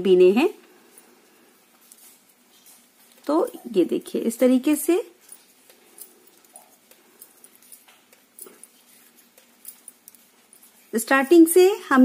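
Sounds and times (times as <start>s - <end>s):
knitting needles ticking: 3.0s - 12.0s.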